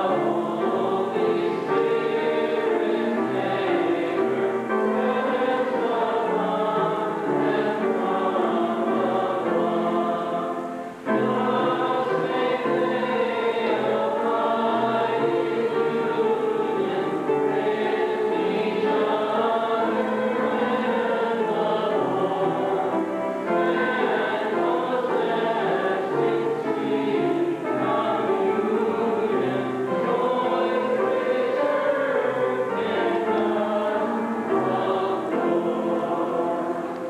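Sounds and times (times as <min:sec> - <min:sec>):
congregation singing a hymn: 0:00.0 - 0:37.0.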